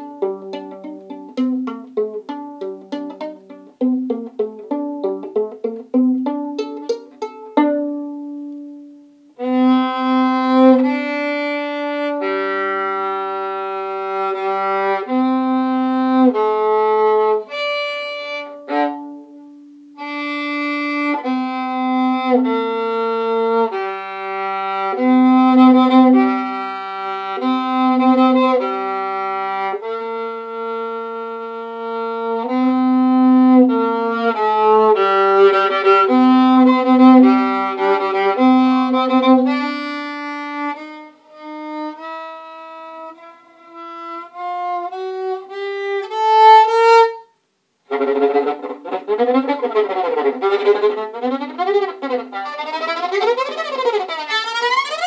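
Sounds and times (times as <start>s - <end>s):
solo viola bowed: 0.0s - 55.0s.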